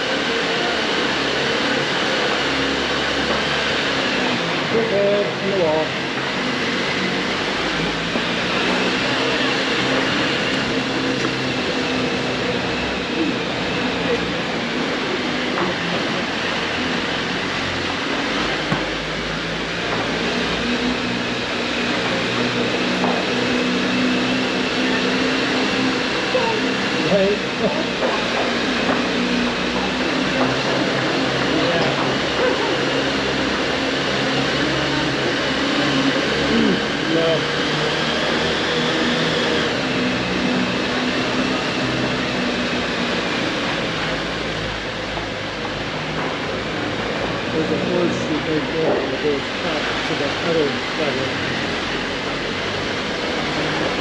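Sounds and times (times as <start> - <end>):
car engine running at low speed: 0.0 - 54.0.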